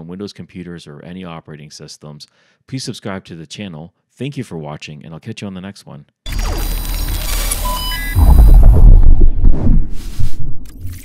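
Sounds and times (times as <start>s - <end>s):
glitchy electronic noise: 6.3s - 9.5s
short high beeps: 6.7s - 8.4s
deep bass hit: 8.2s - 10.0s.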